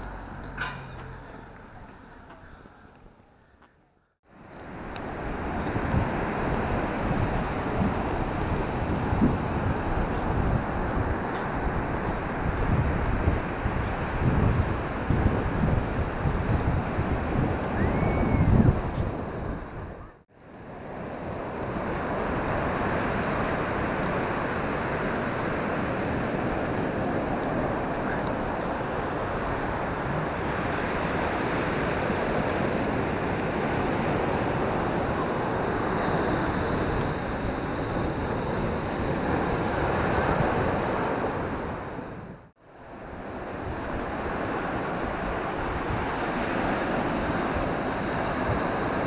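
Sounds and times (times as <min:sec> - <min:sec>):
wind buffeting microphone: 0:04.5 - 0:49.0.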